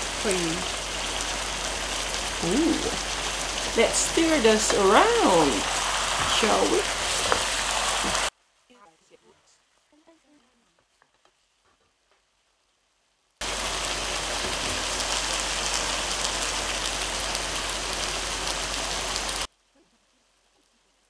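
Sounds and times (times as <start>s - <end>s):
food sizzling in a pan: 0.0s - 8.4s, 13.4s - 21.0s.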